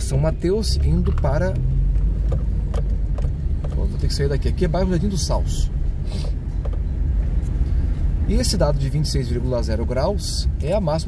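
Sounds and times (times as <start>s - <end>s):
car interior rumble: 0.0s - 11.0s.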